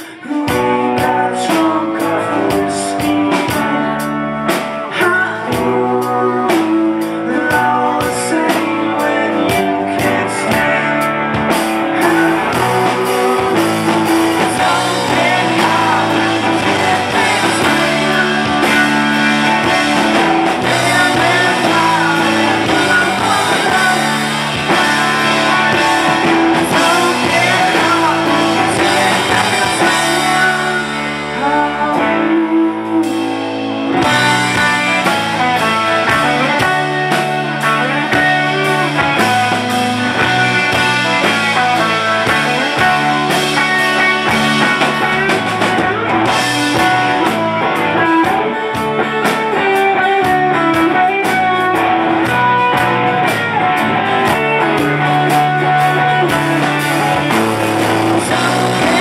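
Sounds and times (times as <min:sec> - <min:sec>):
drum kit: 0:00.0 - 0:59.0
live rock band playing: 0:00.0 - 0:59.0.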